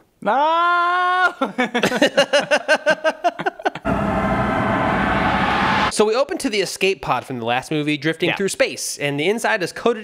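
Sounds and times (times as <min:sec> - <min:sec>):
men laughing: 0:01.2 - 0:03.9
dense rumble: 0:03.9 - 0:05.9.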